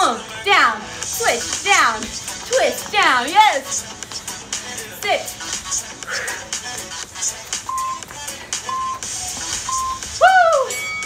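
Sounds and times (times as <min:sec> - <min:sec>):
background music: 0:00.0 - 0:11.0
interval timer beeping: 0:07.7 - 0:10.1, 0:10.7 - 0:11.0.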